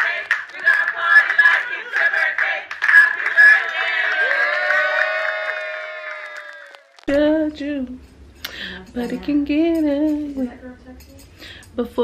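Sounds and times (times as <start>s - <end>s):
group singing together: 0.0s - 4.4s
hands clapping: 0.0s - 7.1s.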